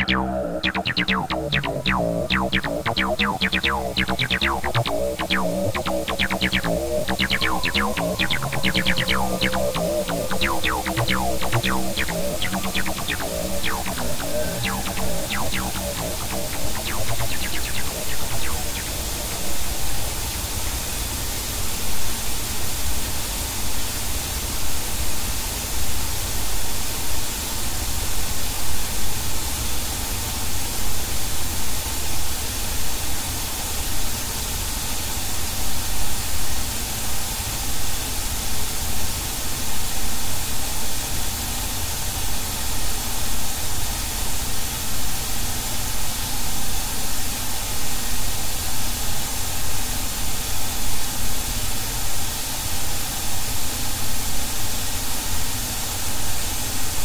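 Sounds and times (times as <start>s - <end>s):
dense static-like electronic noise: 0.0s - 20.2s.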